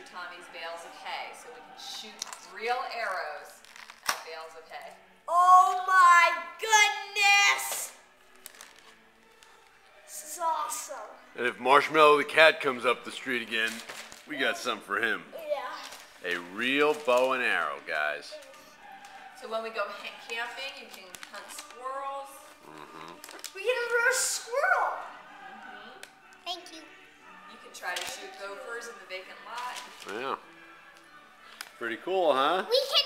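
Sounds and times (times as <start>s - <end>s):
wrapping paper crinkling: 3.6s - 4.2s, 8.3s - 9.8s, 13.2s - 14.8s, 15.8s - 19.3s, 20.1s - 24.0s
child's voice: 5.3s - 7.9s, 10.2s - 11.2s, 15.3s - 16.0s, 18.3s - 18.8s, 23.6s - 25.1s, 26.4s - 26.9s, 32.7s - 33.0s
packaging clicks: 8.4s - 9.5s.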